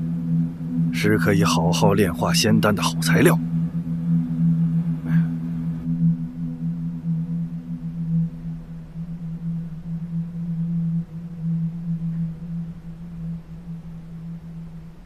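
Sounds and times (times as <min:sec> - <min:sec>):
low droning tone: 0:00.0 - 0:15.0.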